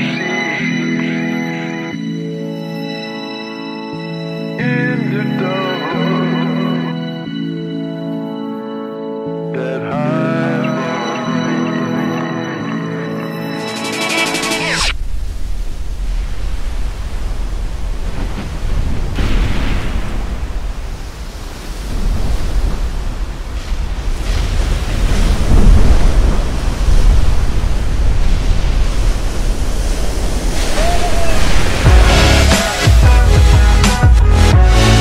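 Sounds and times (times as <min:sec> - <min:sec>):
ocean waves breaking: 0:10.0 - 0:35.0
wind on microphone: 0:14.9 - 0:32.7.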